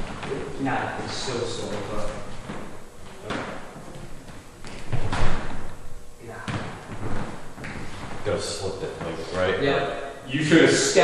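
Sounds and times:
feet stamping on hardwood floor: 1.6s - 5.8s, 6.4s - 8.3s.

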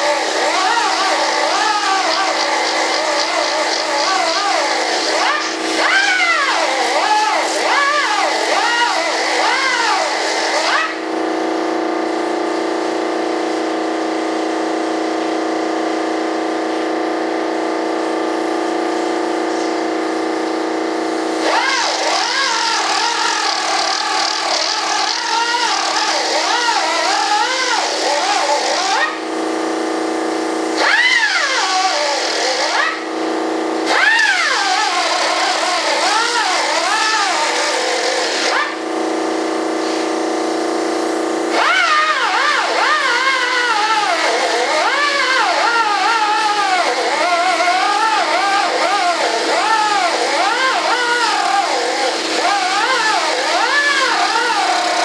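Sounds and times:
belt sander motor hum: 0.0s - 13.1s, 17.2s - 55.0s
sander whine on wood: 0.0s - 55.0s.

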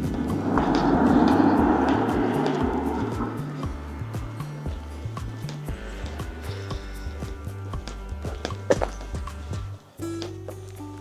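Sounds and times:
vehicle passing: 0.0s - 8.2s
background music with bass line: 0.0s - 11.0s.

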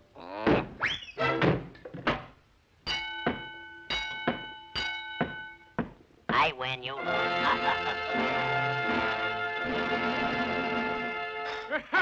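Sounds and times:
cartoon heavy thuds: 0.4s - 2.3s.

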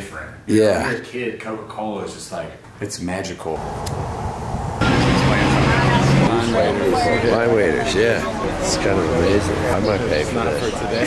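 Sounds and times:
people talking: 0.0s - 3.6s, 4.8s - 11.0s
low vehicle engine hum: 3.6s - 11.0s.

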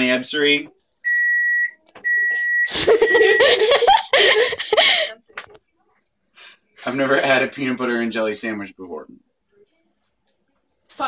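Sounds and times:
appliance beep: 1.0s - 3.7s
person laughing breathily: 2.7s - 5.2s.

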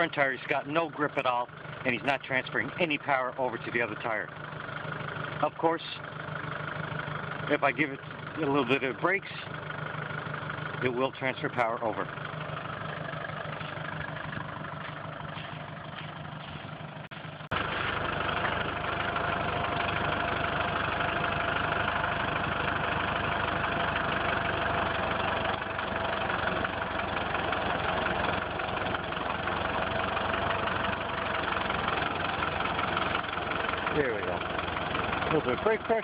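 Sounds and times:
drivetrain whine: 0.0s - 36.0s
vehicle engine running: 0.0s - 36.0s
wheel turning on snow and mud: 0.0s - 36.0s.

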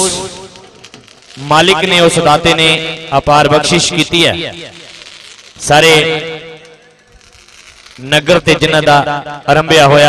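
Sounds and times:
faint fireworks crackle: 0.0s - 10.0s.

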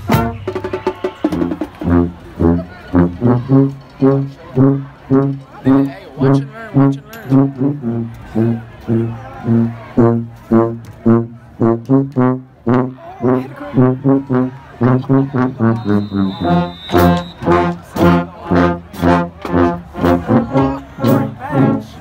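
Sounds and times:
marching band brass playing: 0.0s - 22.0s.

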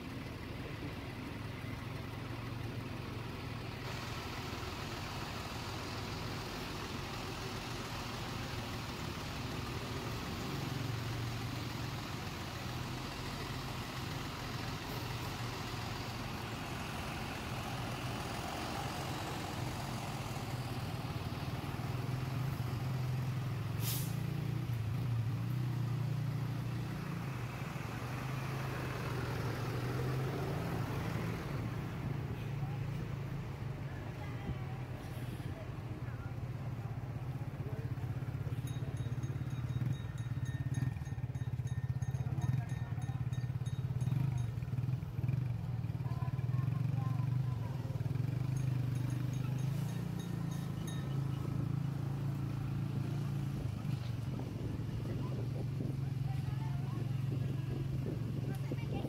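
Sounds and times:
bus diesel engine drone: 0.0s - 59.0s
air brake hiss: 23.8s - 24.2s.

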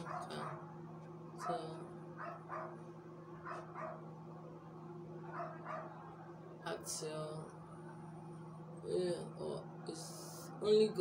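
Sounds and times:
dog barking: 0.0s - 0.7s, 2.2s - 2.8s, 3.4s - 4.1s, 5.3s - 6.0s
steady low hum: 0.0s - 11.0s.

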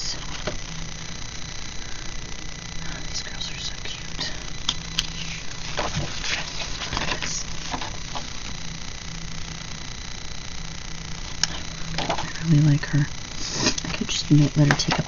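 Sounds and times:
low hum: 0.0s - 15.0s
paper rustling: 5.1s - 8.3s.

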